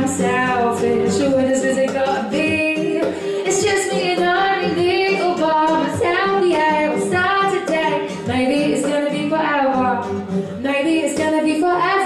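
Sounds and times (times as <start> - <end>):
strummed classical guitar: 0.0 - 12.0
woman singing into a microphone: 0.0 - 12.0.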